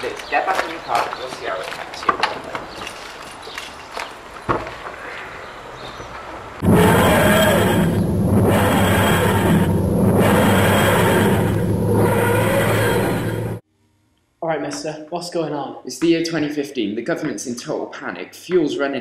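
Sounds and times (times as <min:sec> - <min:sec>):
steady low hum: 0:06.6 - 0:14.0.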